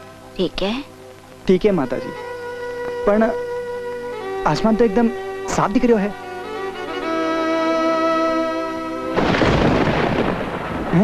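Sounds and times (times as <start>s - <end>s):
sustained music chord: 1.6s - 9.5s
thunder clap rumbling: 9.2s - 11.0s.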